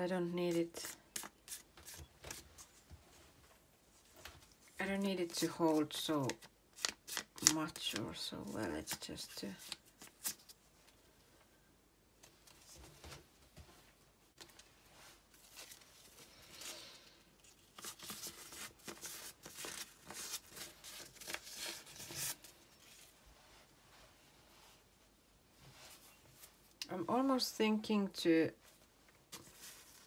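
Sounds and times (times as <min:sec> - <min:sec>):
old paper rustling and crinkling: 0:04.0 - 0:10.6, 0:14.3 - 0:23.3, 0:28.7 - 0:30.0.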